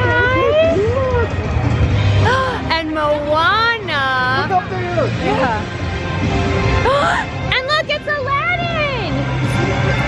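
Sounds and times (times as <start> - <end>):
crowd chatter: 0.0 - 6.1.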